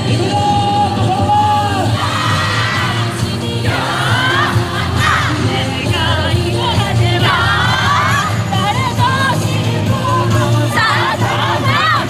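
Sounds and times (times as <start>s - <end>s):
dance music with sung melody: 0.0s - 12.0s
steady low bass: 0.0s - 12.0s.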